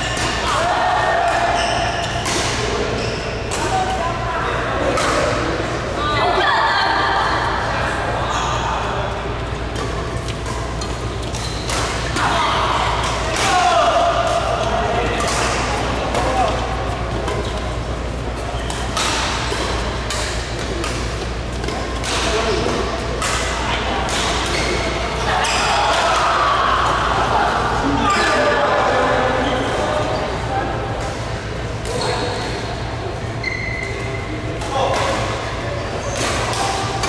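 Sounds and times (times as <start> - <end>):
steady hum: 0.0 - 37.0
voices in a large hall: 0.0 - 37.0
rackets hitting shuttlecock: 4.8 - 5.8, 9.6 - 26.5.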